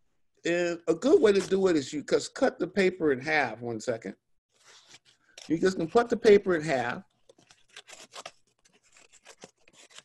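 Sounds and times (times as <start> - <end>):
paper rustling and crackling: 4.6 - 10.0.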